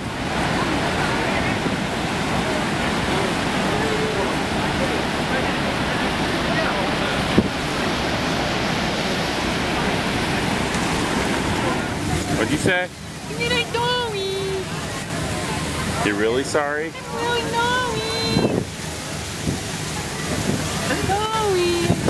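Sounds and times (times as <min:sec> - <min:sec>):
waterfall rushing: 0:00.0 - 0:22.0
wind on microphone: 0:17.8 - 0:22.0.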